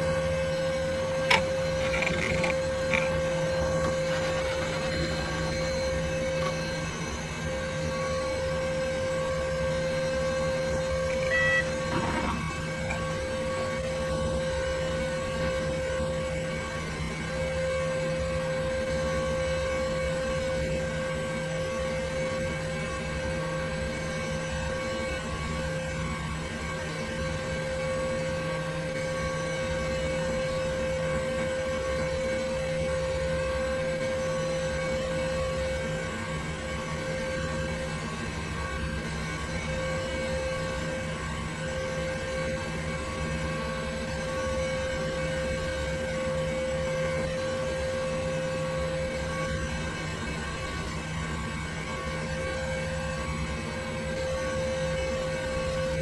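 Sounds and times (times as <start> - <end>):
computer fans whirring: 0.0 - 56.0
constant whine: 0.0 - 56.0.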